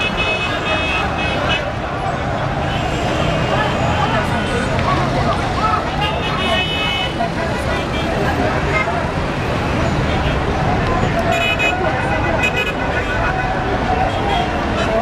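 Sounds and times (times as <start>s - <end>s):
car horns: 0.0s - 1.8s, 5.9s - 7.2s, 11.0s - 15.0s
many voices talking: 0.0s - 15.0s
traffic noise: 0.0s - 15.0s.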